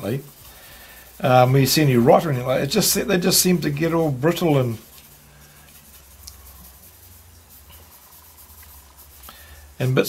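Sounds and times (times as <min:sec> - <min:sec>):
brush rubbing on paper: 0:00.0 - 0:10.0.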